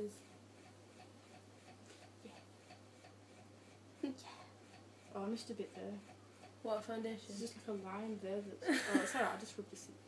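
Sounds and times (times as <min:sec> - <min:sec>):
low steady hum: 0:00.0 - 0:10.0
makeup brush dabbing ticks: 0:04.7 - 0:08.5.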